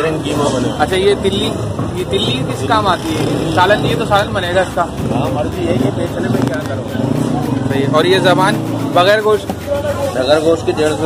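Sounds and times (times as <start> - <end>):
man speaking: 0.0 - 11.0
vehicle engine humming: 0.0 - 11.0.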